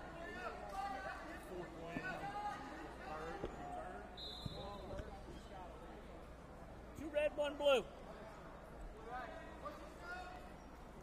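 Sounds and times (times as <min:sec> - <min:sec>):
faint voices and chatter: 0:00.0 - 0:11.0.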